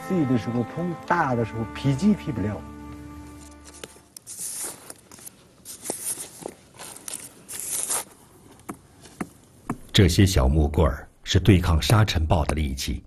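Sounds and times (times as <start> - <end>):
held music chord: 0.0 - 3.9
wooden sticks scraping in sand: 3.3 - 9.2.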